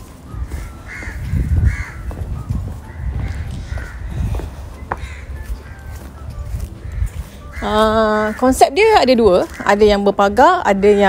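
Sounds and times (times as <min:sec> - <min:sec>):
bird calling: 0:00.4 - 0:11.0.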